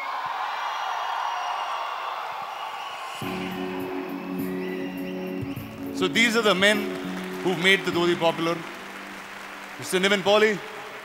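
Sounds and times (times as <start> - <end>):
hazy sustained wash: 3.2 - 11.0.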